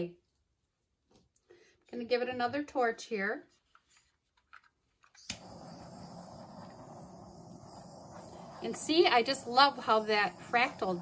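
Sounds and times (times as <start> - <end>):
torch flame hissing: 5.2 - 11.0
torch igniter click: 5.2 - 11.0.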